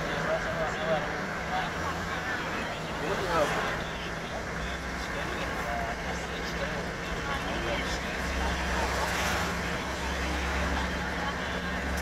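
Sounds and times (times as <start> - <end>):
road noise: 0.0 - 12.0
vehicle engine hum: 0.0 - 12.0
vehicles passing: 0.0 - 12.0.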